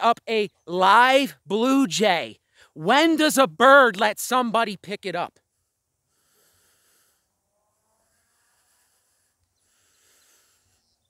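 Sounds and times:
faint breath: 2.4s - 2.8s, 5.5s - 7.4s, 8.1s - 11.0s.

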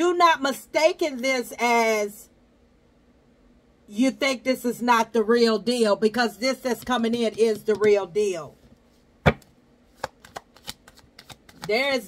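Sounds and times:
cards shuffled by hand: 9.3s - 12.0s.

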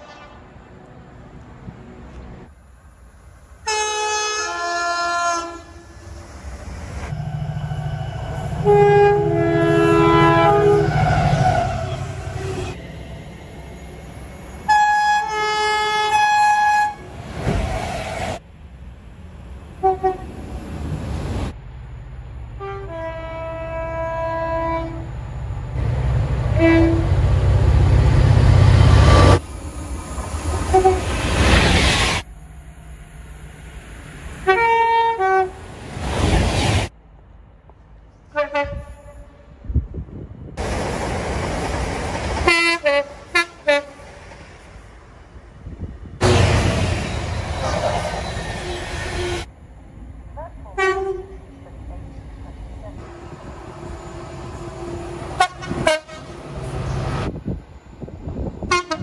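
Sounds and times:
train horns: 0.0s - 0.8s, 3.6s - 6.1s, 7.2s - 12.8s, 14.7s - 17.2s, 19.8s - 20.3s, 22.5s - 25.2s, 26.5s - 27.3s, 30.5s - 31.2s, 34.4s - 35.7s, 38.3s - 39.6s, 42.4s - 44.1s, 47.6s - 49.5s, 50.7s - 51.4s, 52.9s - 57.1s, 58.6s - 59.0s
trains rumbling past at speed: 0.0s - 59.0s.

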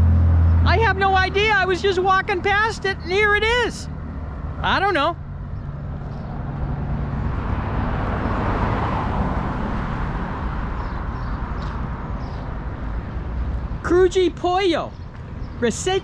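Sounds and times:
vehicle passing by: 0.0s - 13.8s.

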